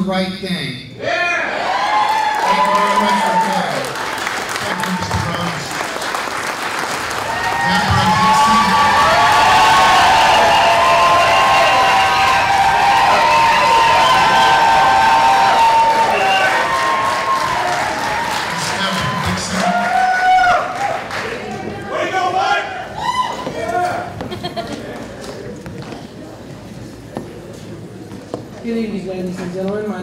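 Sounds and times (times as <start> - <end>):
crowd cheering and whooping: 1.0 - 3.9, 7.2 - 24.2
audience applauding: 1.9 - 22.0.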